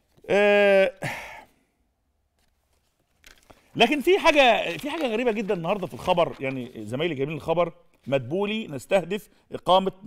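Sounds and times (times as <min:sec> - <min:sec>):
man sighing: 0:00.2 - 0:01.7.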